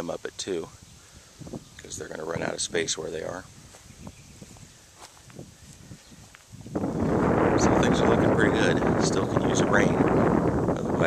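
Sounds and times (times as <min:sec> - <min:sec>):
wind gust buffeting microphone: 0:00.0 - 0:11.0
footsteps crunching on dry soil: 0:01.4 - 0:08.2.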